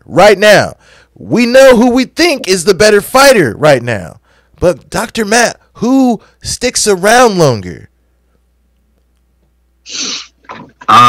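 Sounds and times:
man speaking: 0:00.0 - 0:07.9
breathy exhale: 0:00.8 - 0:01.1
faint mouth sound: 0:09.9 - 0:10.4.

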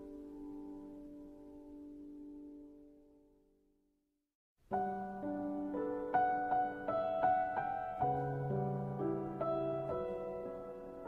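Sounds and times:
solo piano melody: 0:00.0 - 0:03.7, 0:04.6 - 0:11.0.

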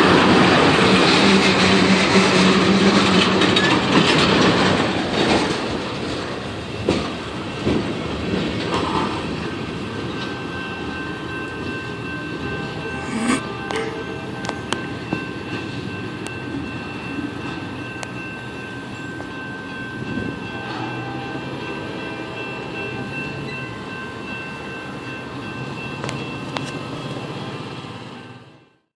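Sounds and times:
train wheels rumbling on rails: 0:00.0 - 0:28.3
rail joint clicks: 0:01.0 - 0:10.6, 0:13.6 - 0:16.8
high-pitched ringing tones: 0:10.4 - 0:26.8.

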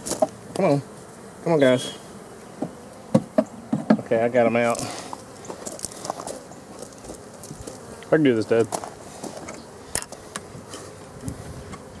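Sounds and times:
bees buzzing: 0:00.0 - 0:12.0.

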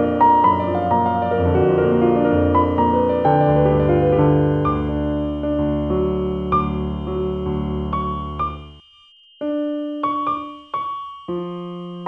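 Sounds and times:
slow soft keyboard music: 0:00.0 - 0:08.8.

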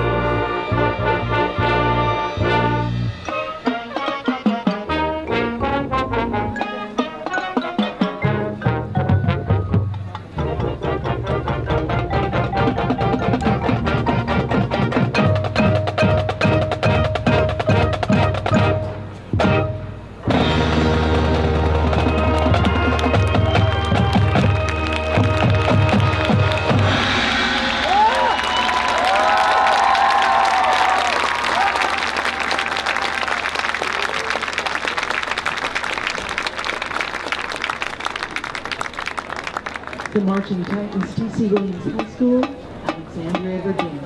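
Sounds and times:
marching band drums and percussion: 0:02.4 - 0:05.2, 0:06.4 - 0:29.4, 0:40.2 - 0:44.0
crowd applause and cheering: 0:20.4 - 0:41.2.

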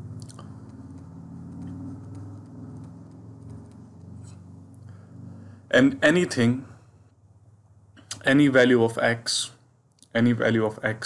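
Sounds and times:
stylus scratching and tapping screen: 0:00.0 - 0:06.4
low electrical hum: 0:00.0 - 0:11.0.

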